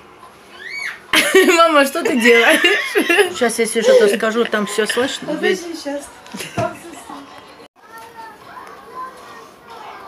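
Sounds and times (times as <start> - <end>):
faint children's voices: 3.2 - 10.0.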